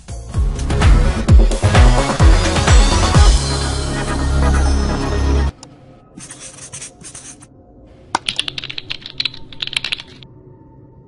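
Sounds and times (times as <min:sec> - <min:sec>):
electronic music: 0:00.0 - 0:05.6
rapid clicking: 0:08.2 - 0:10.2.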